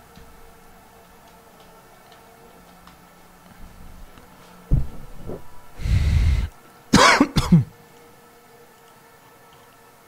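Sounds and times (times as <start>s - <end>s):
faint steady hum: 0.0s - 10.0s
man clearing his throat: 7.0s - 7.7s.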